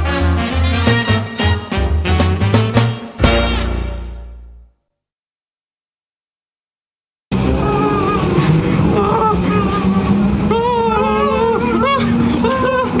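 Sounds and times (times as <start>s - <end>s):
train carriage hum and rumble: 7.3s - 13.0s.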